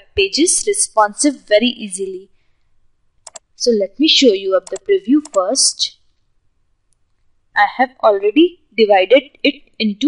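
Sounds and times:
woman speaking: 0.0 - 2.3, 3.6 - 5.9, 7.6 - 10.0.

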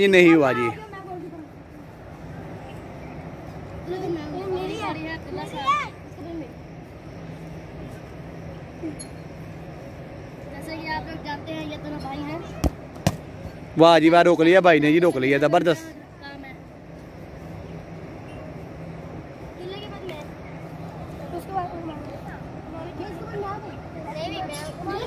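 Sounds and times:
steady low hum: 0.0 - 25.0
football being kicked: 12.6 - 13.3.

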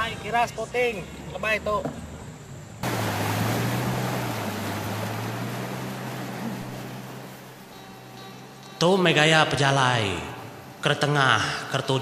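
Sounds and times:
water rushing along hull: 2.8 - 8.6
boat engine running: 2.8 - 8.8.

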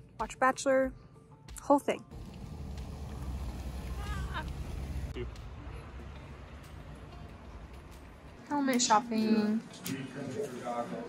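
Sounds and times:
bus engine rumbling: 2.1 - 8.4.

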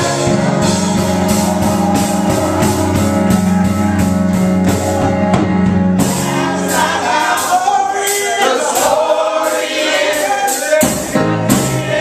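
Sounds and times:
bass and drums: 0.0 - 7.6, 10.8 - 12.0
group gospel singing: 6.0 - 12.0.

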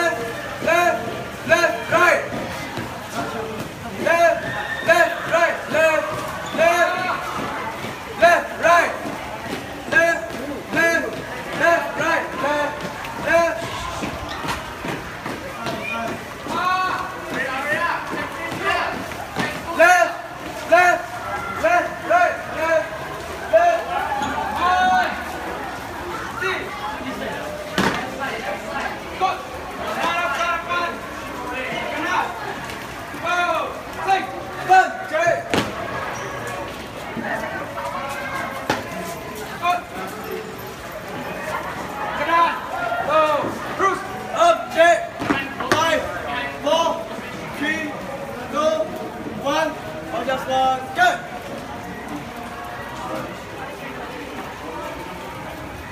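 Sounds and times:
people shouting drill calls: 4.0 - 9.2.

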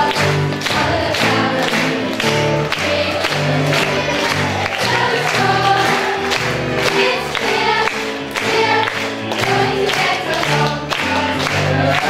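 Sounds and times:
chorus singing a show tune: 0.0 - 12.0
clapped beat: 0.0 - 12.0
musical accompaniment: 0.0 - 12.0.

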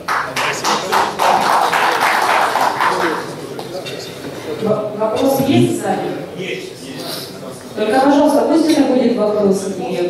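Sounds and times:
audience applauding: 0.0 - 3.4.

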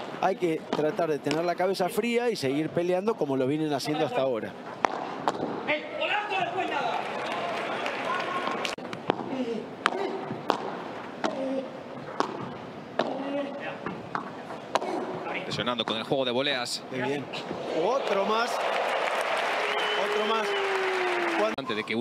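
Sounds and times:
padel ball struck by rackets: 9.1 - 11.4.

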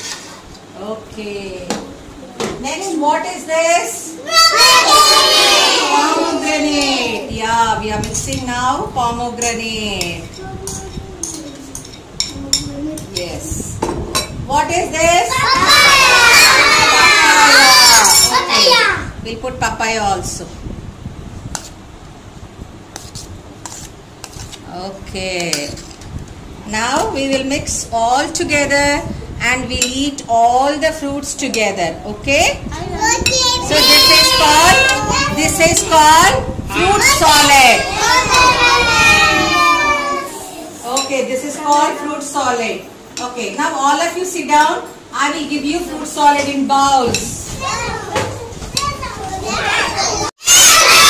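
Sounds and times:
young children talking and calling out: 4.1 - 7.4, 10.3 - 13.1, 15.2 - 19.2, 32.6 - 40.9, 47.3 - 51.0
metal spoon scraping a bowl: 23.0 - 24.6.

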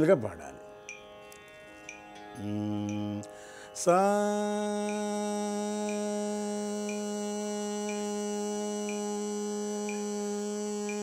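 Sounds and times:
person singing a sustained note: 2.4 - 11.0
faint ticking: 7.8 - 8.2, 9.8 - 10.1.

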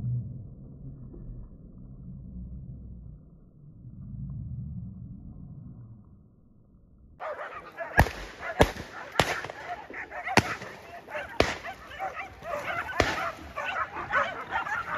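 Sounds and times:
dogs barking and yelping: 7.2 - 14.9
sharp cracks: 7.2 - 14.9.

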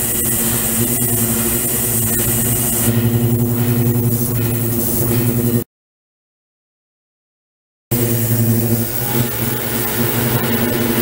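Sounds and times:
low machine hum: 0.0 - 5.6, 7.9 - 11.0.

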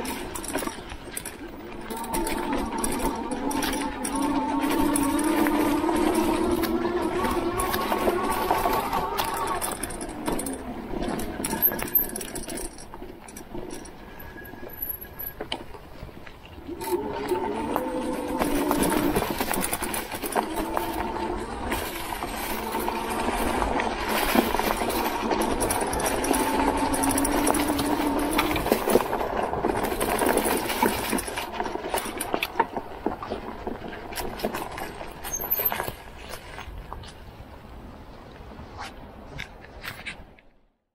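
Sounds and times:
tyres crunching over leaves: 0.0 - 14.7, 15.4 - 37.7
electric motor whining: 1.9 - 9.9.

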